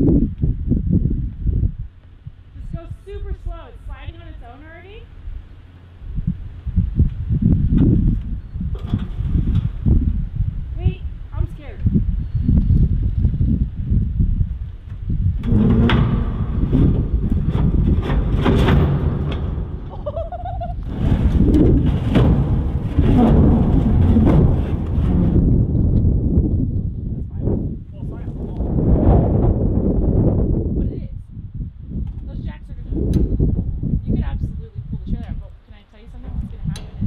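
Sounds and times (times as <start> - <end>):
loud low rumble: 0.0 - 35.2
heavy thuds on ground: 15.2 - 26.9
metal container scraping: 15.4 - 20.1, 20.7 - 25.9.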